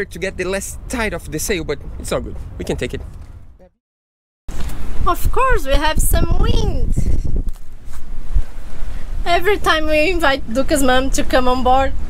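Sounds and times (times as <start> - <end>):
wind buffeting microphone: 4.5 - 12.0.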